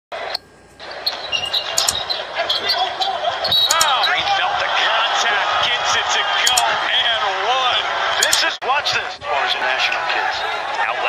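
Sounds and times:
arena crowd noise: 0.1s - 11.0s
sneakers squeaking on hardwood: 0.8s - 4.4s.

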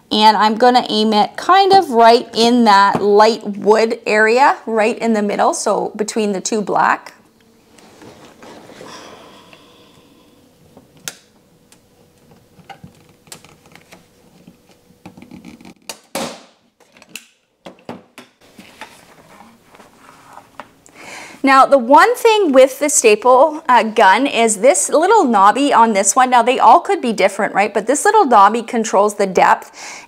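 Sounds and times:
faint handling sounds: 7.4s - 9.0s, 18.4s - 20.7s.

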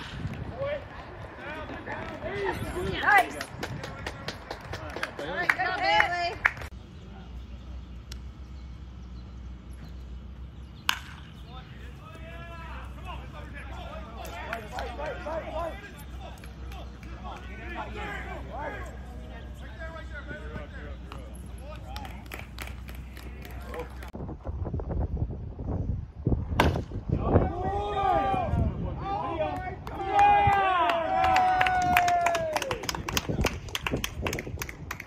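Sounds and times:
baseball bat hitting ball: 10.8s - 11.4s, 26.6s - 26.9s
spectators shouting and cheering: 11.9s - 24.1s, 27.2s - 32.9s.

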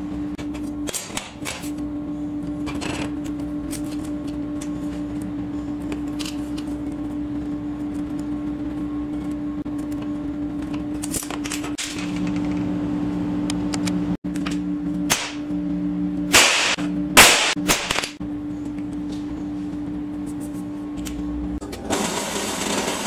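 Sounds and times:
workshop hum: 0.0s - 23.0s.

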